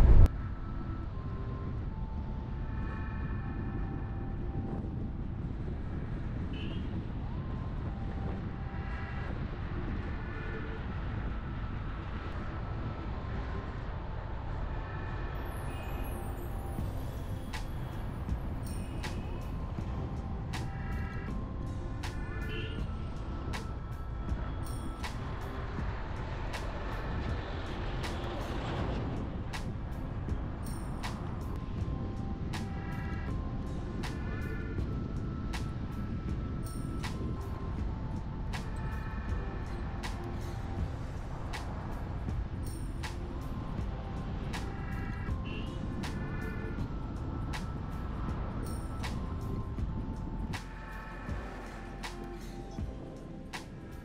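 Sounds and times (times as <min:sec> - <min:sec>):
car engine and road rumble: 0:00.0 - 0:54.0
music with light percussion: 0:00.0 - 0:54.0.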